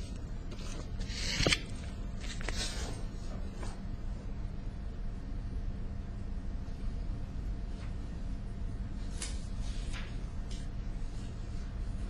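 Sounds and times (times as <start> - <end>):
low electrical hum: 0.0 - 12.0
paper rustling and shuffling: 0.5 - 3.8, 9.0 - 12.0.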